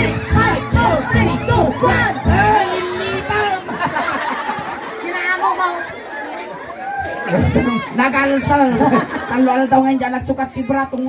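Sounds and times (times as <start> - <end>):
chatter: 0.0 - 11.0.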